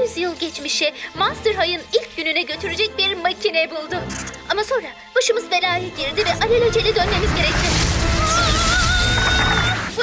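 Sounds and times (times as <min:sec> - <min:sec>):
dramatic trailer music: 0:00.0 - 0:10.0.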